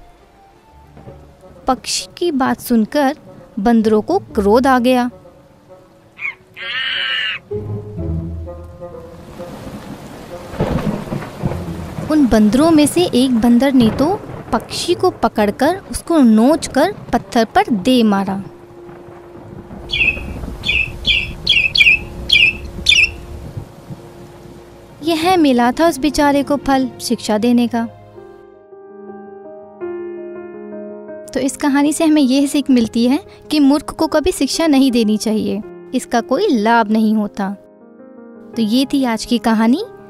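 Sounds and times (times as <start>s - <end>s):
soft background music: 0.0s - 40.0s
bird squawking: 6.2s - 7.5s, 19.9s - 23.2s
harsh animal cry: 6.2s - 7.5s
low rumble: 10.7s - 17.6s.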